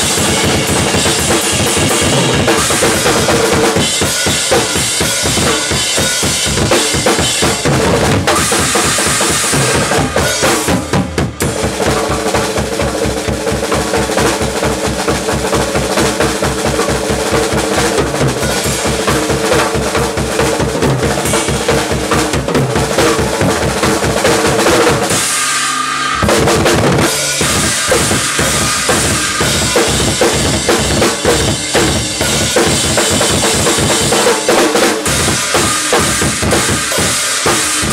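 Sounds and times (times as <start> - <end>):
drum kit playing: 0.0 - 37.9
rapid bass drum strokes: 0.0 - 37.9.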